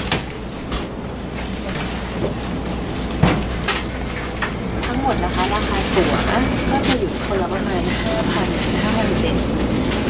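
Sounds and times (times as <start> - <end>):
train carriage hum: 0.0 - 10.0
woman talking: 4.8 - 9.6.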